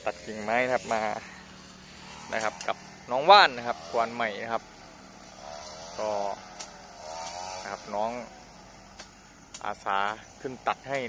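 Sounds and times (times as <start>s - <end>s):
man speaking: 0.0s - 1.3s, 2.3s - 4.6s, 7.7s - 8.4s, 9.6s - 11.0s
faint outdoor background hiss: 0.0s - 11.0s.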